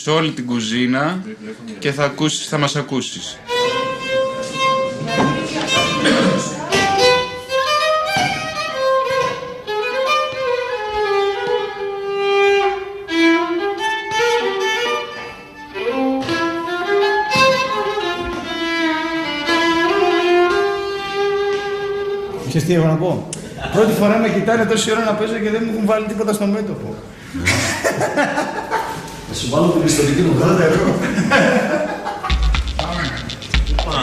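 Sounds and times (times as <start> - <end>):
solo violin melody with slides: 3.4 - 22.4.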